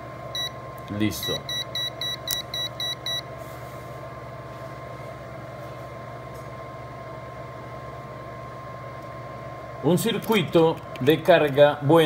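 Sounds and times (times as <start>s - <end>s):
low electrical hum: 0.0s - 12.0s
multimeter alarm beeping rapidly: 0.4s - 0.6s, 1.2s - 3.3s.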